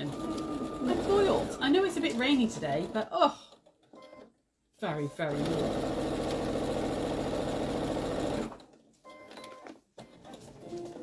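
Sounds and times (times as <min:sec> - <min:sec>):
electric sewing machine stitching: 0:00.0 - 0:03.1, 0:05.3 - 0:08.6.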